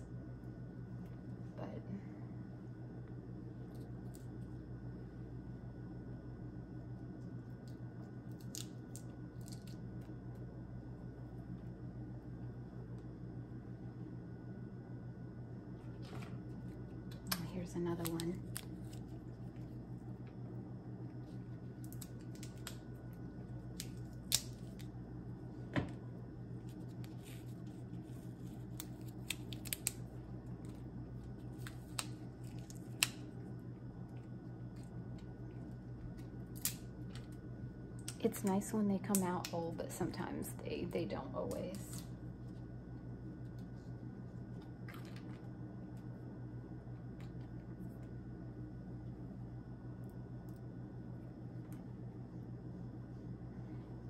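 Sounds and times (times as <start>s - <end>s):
steady low hum: 0.0s - 54.0s
chestnut shells cracking: 8.3s - 10.0s, 21.8s - 23.0s, 23.7s - 24.9s, 28.6s - 30.8s, 31.4s - 33.4s, 36.5s - 37.3s.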